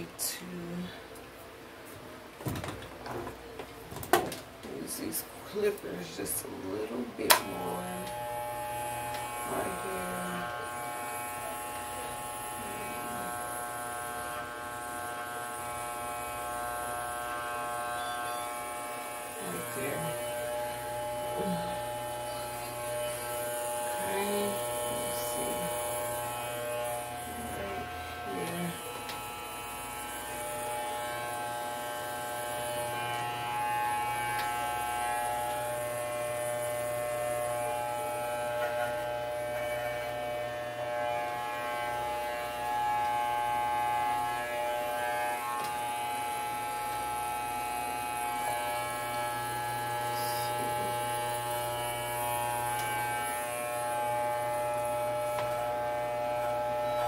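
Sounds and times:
electric hair clippers buzzing: 0:05.6 - 0:57.0.

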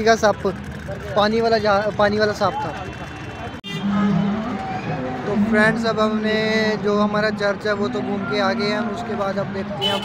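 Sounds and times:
crowd noise: 0:00.0 - 0:10.0
road traffic: 0:00.0 - 0:10.0.

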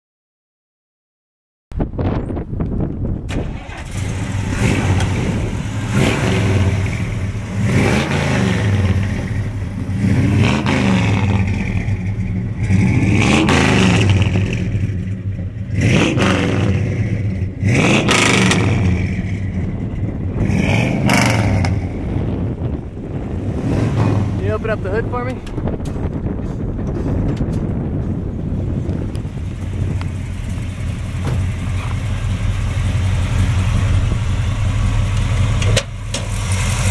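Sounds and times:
car engine revving: 0:03.3 - 0:26.4, 0:27.9 - 0:36.9.

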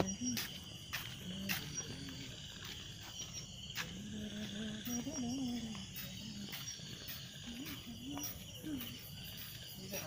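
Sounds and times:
crickets chirping: 0:00.0 - 0:10.0
faint voices: 0:00.0 - 0:10.0.

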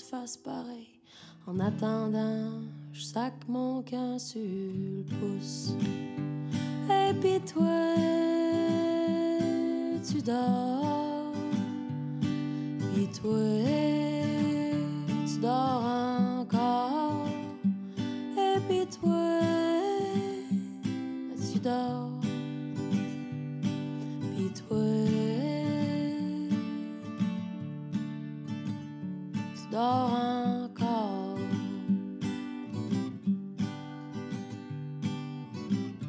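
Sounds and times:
picked guitar lead melody: 0:04.4 - 0:36.0.

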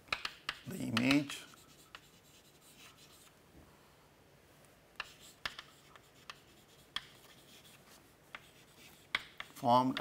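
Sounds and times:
chalk tapping on board: 0:00.1 - 0:03.3, 0:05.0 - 0:10.0
chalk scratching on chalkboard: 0:00.5 - 0:03.3, 0:05.0 - 0:10.0.

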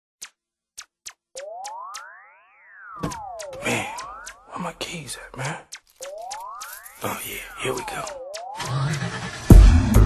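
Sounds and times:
tones sliding upward: 0:01.4 - 0:04.6, 0:05.7 - 0:09.5
sharp clicks: 0:03.0 - 0:09.4.

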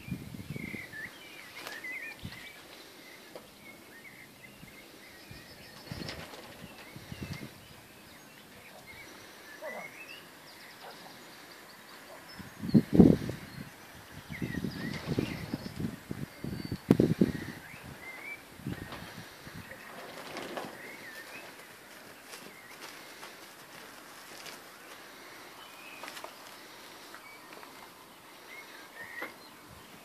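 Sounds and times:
birds singing and chirping: 0:00.0 - 0:30.0.

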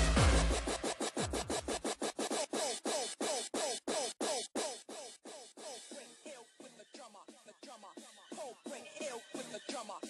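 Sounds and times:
fast distorted kick drums: 0:00.0 - 0:01.8
dj scratching: 0:00.0 - 0:06.4.

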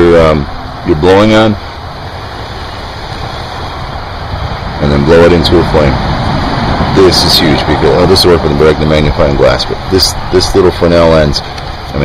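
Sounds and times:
rushing outdoor noise: 0:00.0 - 0:12.0
man's voice: 0:06.9 - 0:12.0.

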